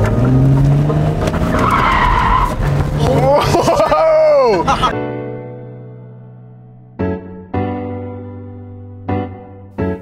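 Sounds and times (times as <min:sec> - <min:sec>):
car engine running: 0:00.0 - 0:03.4
car tyres squealing: 0:00.0 - 0:04.8.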